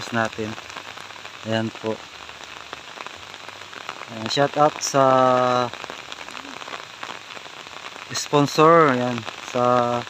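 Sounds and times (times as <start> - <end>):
steady rain patter: 0.0 - 10.0.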